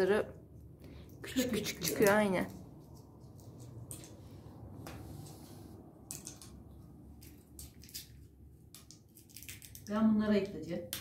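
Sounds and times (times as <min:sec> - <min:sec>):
walnut shells cracking: 0:06.0 - 0:10.0.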